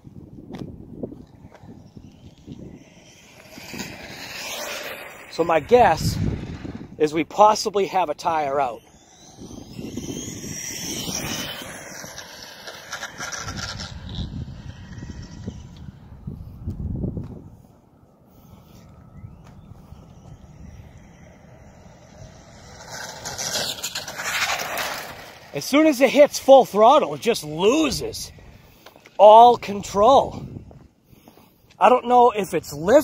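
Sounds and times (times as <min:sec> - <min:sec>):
low rumbling noise: 0:00.0 - 0:07.4, 0:08.1 - 0:25.7
electric rc car motor whine: 0:01.0 - 0:30.7.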